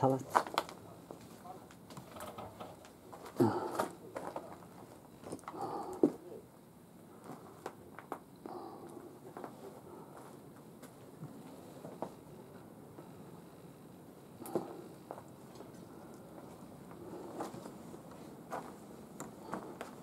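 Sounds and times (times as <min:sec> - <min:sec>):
faint clicks and shuffling: 0:00.0 - 0:06.4, 0:07.1 - 0:13.2, 0:14.4 - 0:20.0.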